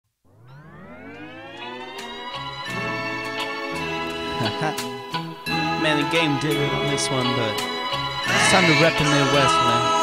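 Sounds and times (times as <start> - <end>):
siren rising in pitch: 0.2 - 4.6.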